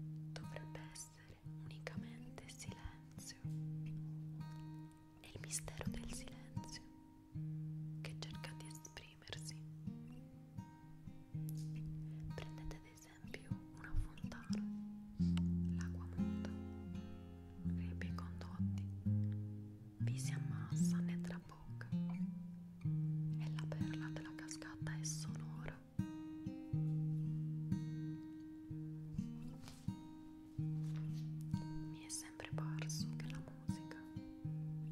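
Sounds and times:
plucked string instrument music: 14.4s - 24.0s, 25.7s - 34.9s.

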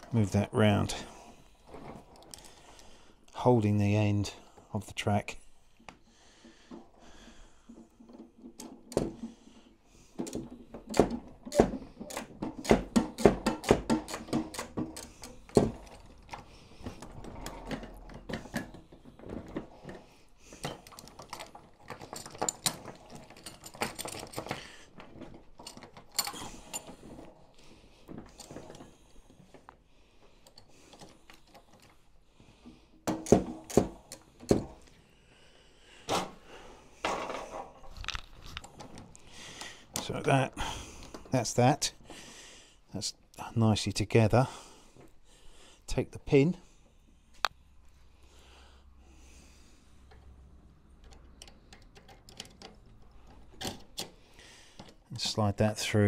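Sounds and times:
tank track links clattering: 10.2s - 29.7s.

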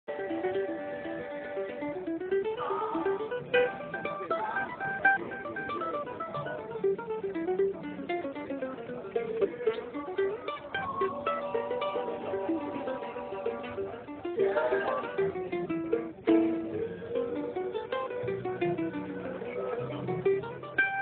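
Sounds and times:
mandolin picking bluegrass runs: 0.1s - 21.0s.

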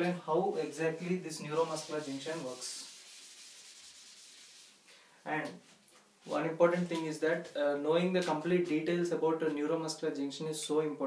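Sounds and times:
eraser rubbing whiteboard: 1.0s - 4.8s.

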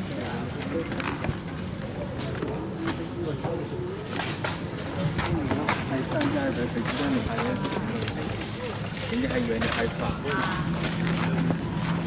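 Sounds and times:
outdoor background noise: 0.0s - 12.0s
people talking: 4.8s - 10.8s.

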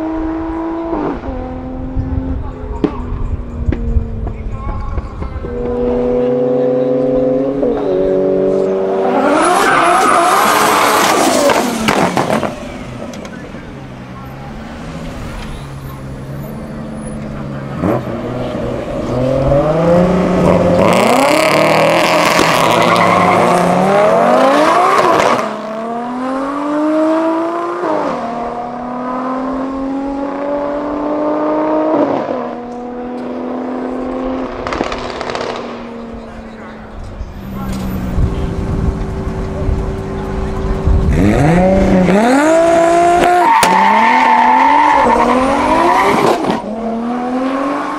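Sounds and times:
drag cars accelerating: 0.0s - 47.9s.

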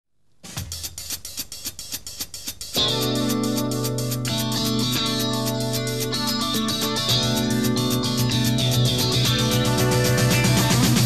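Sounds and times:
fast ticking rhythm: 0.4s - 11.0s
live rock band playing: 2.8s - 11.0s.

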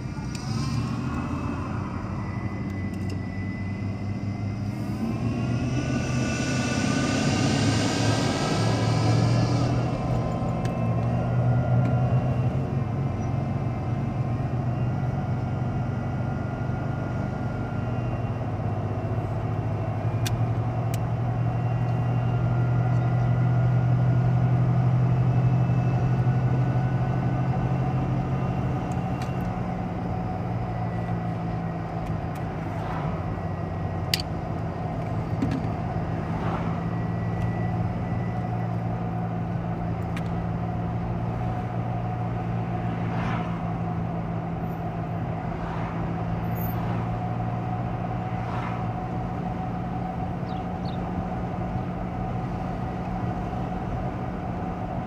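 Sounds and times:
car engine accelerating: 0.0s - 55.0s
road noise inside car: 0.0s - 55.0s.

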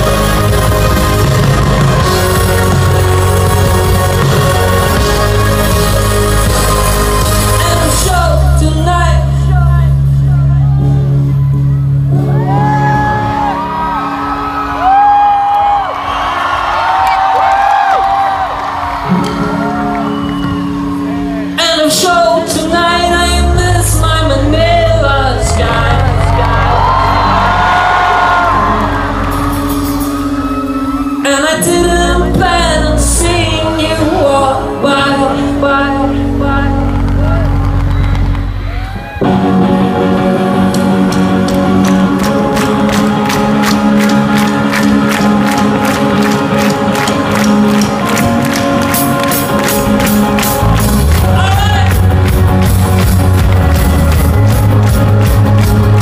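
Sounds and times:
deep bass: 0.0s - 15.0s, 19.2s - 56.0s
indie pop band playing live: 0.0s - 56.0s
person singing: 2.1s - 11.2s, 21.5s - 29.8s, 31.2s - 37.7s, 50.4s - 52.6s
crowd whooping: 10.2s - 21.6s, 25.4s - 31.6s, 37.2s - 40.2s.

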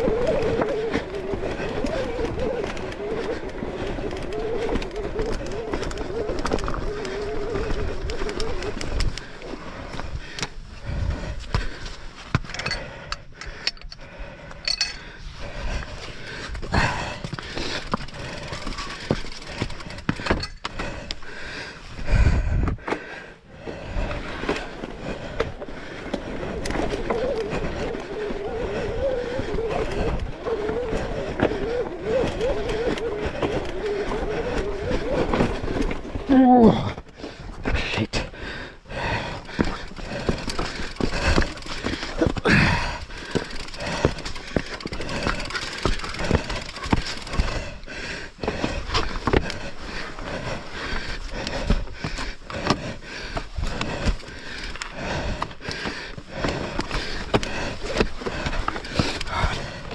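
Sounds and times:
bike rattling on rough trail: 0.0s - 59.9s.

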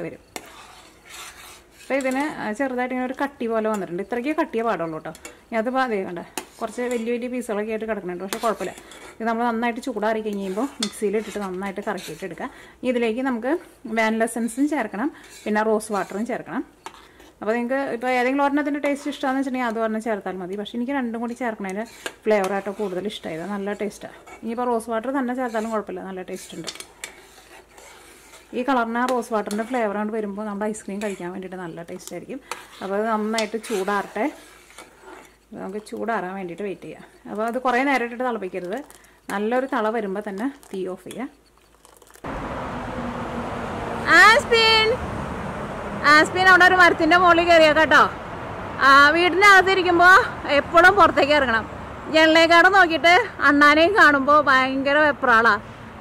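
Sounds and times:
spoon stirring in saucepan: 0.0s - 42.2s
metal spoon clinking against saucepan: 10.3s - 11.7s, 26.4s - 27.2s.

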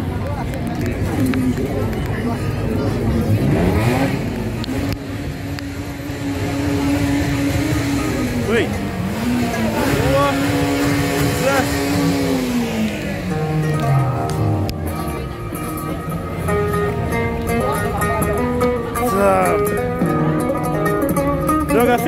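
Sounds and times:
crowd voices: 0.0s - 22.0s
car engine revving: 0.7s - 22.0s.

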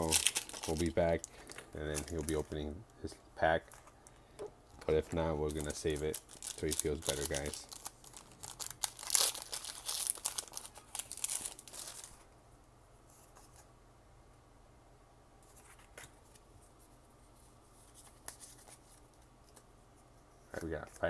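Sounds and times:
foil wrapper tearing and crinkling: 0.0s - 2.4s, 5.4s - 12.2s.

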